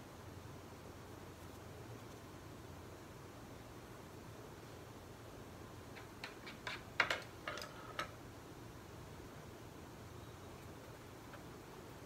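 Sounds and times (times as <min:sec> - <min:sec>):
paintbrushes clicking and tapping: 0:05.9 - 0:08.2.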